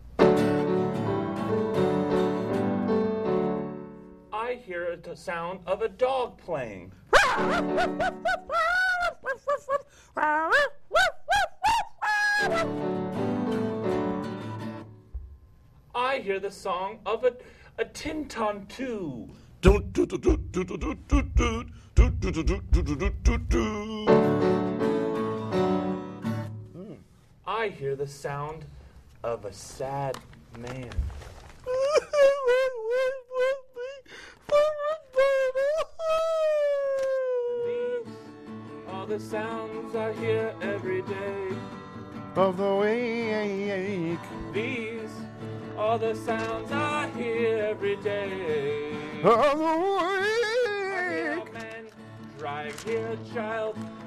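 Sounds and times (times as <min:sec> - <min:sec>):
dog-like yips and whimpers: 0:07.1 - 0:07.5
person imitating crying: 0:07.1 - 0:12.7, 0:19.6 - 0:24.2, 0:26.7 - 0:27.1, 0:31.6 - 0:38.1.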